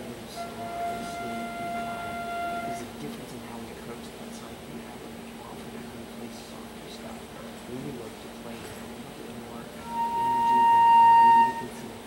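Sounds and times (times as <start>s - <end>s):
flute holding one note: 0.3s - 2.9s, 9.8s - 11.8s.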